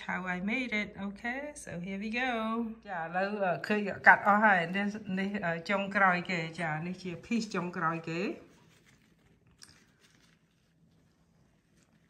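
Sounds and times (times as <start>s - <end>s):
person speaking: 0.0s - 8.6s
soft handling sounds: 7.4s - 12.0s.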